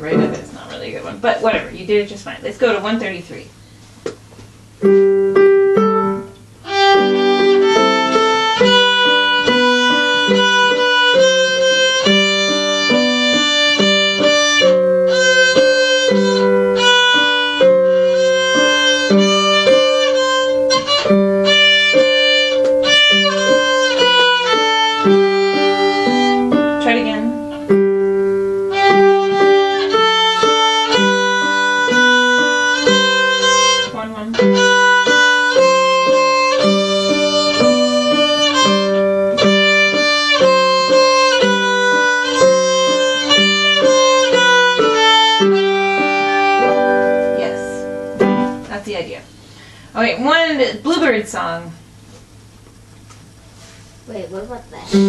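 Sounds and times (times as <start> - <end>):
violin bowed notes: 6.6 - 27.8, 28.5 - 48.6.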